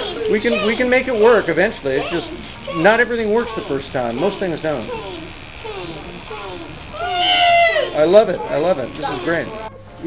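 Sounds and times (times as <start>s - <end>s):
classroom chatter: 0.0s - 10.0s
child squealing: 4.8s - 8.1s.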